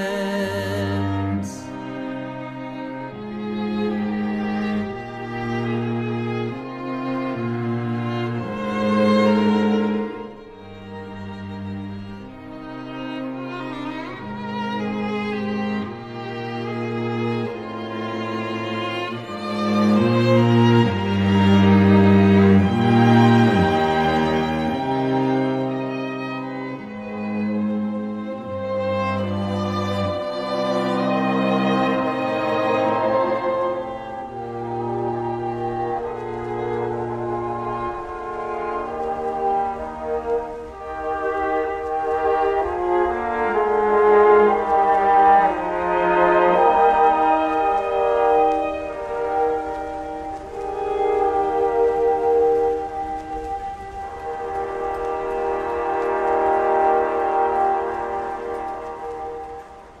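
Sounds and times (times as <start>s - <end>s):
orchestral strings sustained chords: 0.0s - 60.0s.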